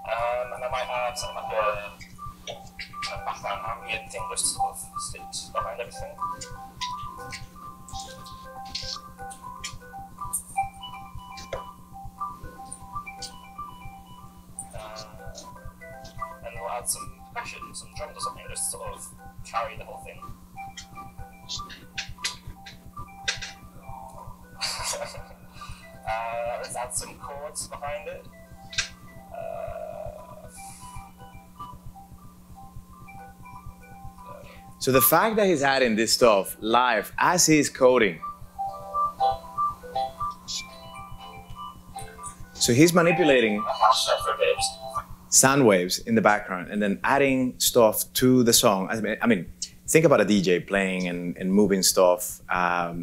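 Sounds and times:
synth plinking notes: 0.0s - 47.6s, 48.5s - 51.8s
steady low hum: 0.0s - 53.0s
sharp electronic clicks: 0.2s - 45.6s.

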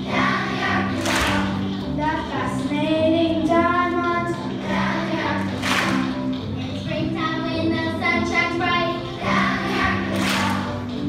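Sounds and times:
children's choir singing: 0.0s - 2.7s, 3.3s - 6.3s, 7.0s - 11.0s
instrumental accompaniment: 0.0s - 11.0s.

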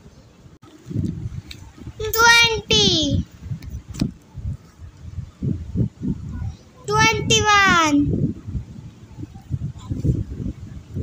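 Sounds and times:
child calling out sing-song: 2.0s - 3.2s, 6.8s - 8.1s.

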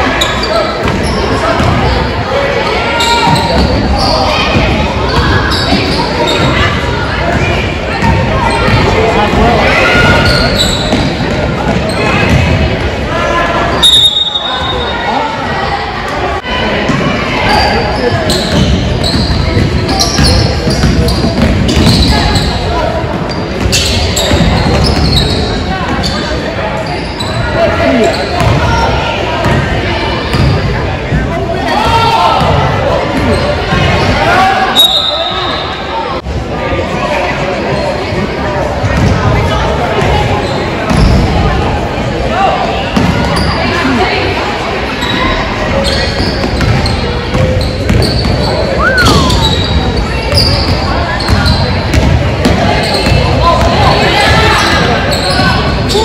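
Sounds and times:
voices echoing in a hall: 0.0s - 56.0s.

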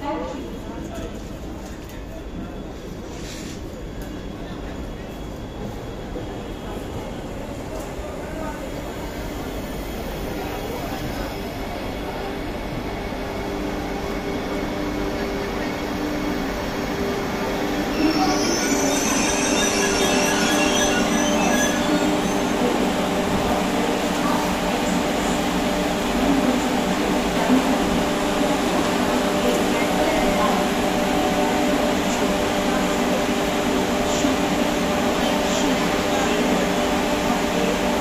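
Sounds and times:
high-pitched squealing: 17.8s - 23.2s.

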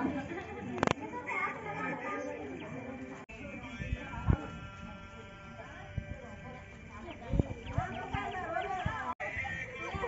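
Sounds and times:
people talking: 0.0s - 10.0s
deep drum beats: 3.5s - 10.0s.

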